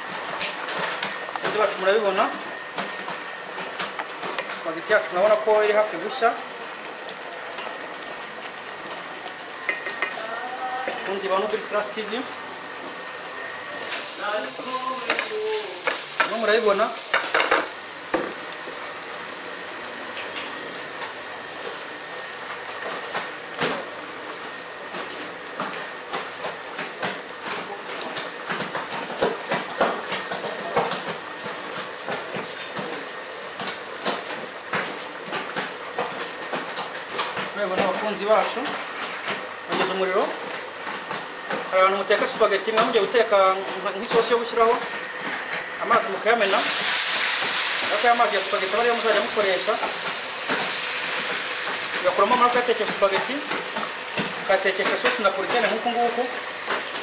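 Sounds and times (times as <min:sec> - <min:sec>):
pasta boiling in a pot: 0:00.0 - 0:57.0
vegetables sizzling in a wok: 0:00.0 - 0:57.0.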